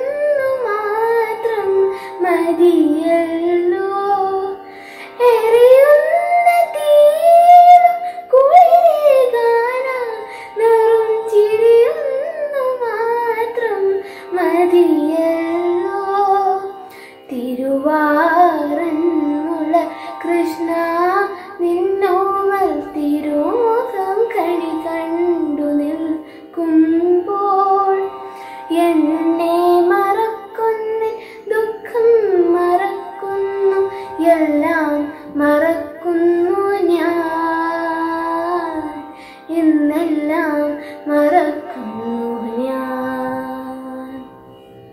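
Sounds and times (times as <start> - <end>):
girl singing devotional song: 0.0 - 44.3.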